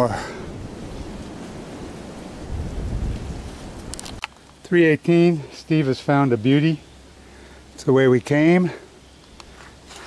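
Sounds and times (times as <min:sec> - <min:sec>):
wind buffeting microphone: 0:00.0 - 0:04.2.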